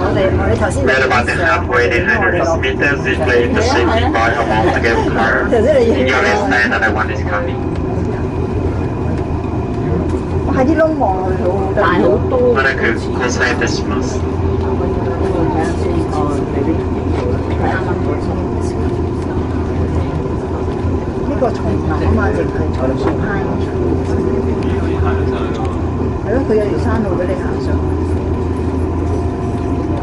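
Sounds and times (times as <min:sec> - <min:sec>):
cable car cabin humming: 0:00.0 - 0:30.0
passengers talking: 0:00.0 - 0:30.0.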